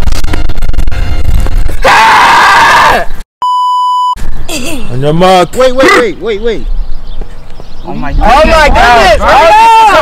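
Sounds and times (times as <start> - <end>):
censor bleep: 3.4 - 4.2.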